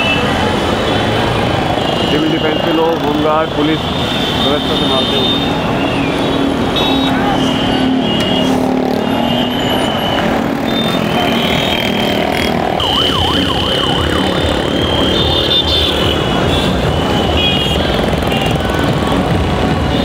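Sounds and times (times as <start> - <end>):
motorcycles rumbling past: 8.6 - 16.8.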